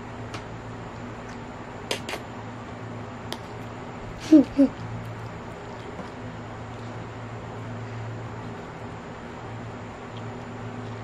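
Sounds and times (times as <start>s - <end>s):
steady low hum: 0.0s - 11.0s
wet mouth smacks: 1.3s - 2.2s.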